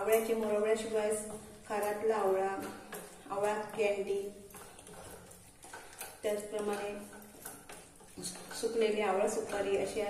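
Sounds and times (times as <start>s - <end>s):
woman speaking: 0.0s - 4.5s, 6.2s - 7.2s, 8.5s - 10.0s
spoon stirring in metal pot: 0.0s - 10.0s
spoon scraping metal: 4.1s - 10.0s.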